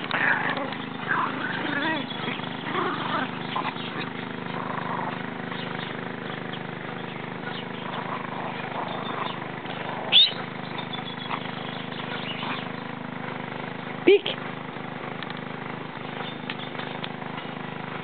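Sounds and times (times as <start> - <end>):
steady low hum: 0.0 - 18.0
small dog yelp: 10.1 - 11.2.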